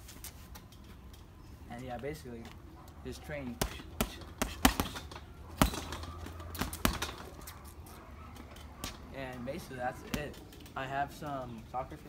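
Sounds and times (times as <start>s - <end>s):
boxing gloves hitting heavy bag: 3.4s - 7.5s.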